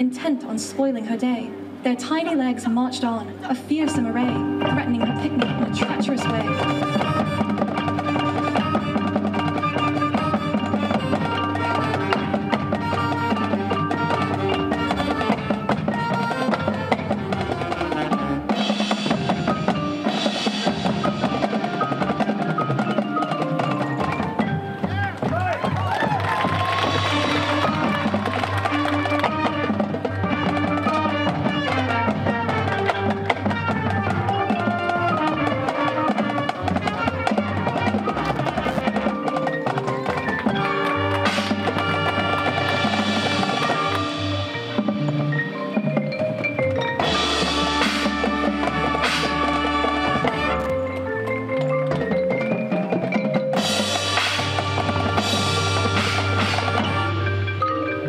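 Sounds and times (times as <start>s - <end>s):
drums: 0.0s - 58.0s
front-ensemble percussion: 0.0s - 58.0s
marching band playing: 0.0s - 58.0s.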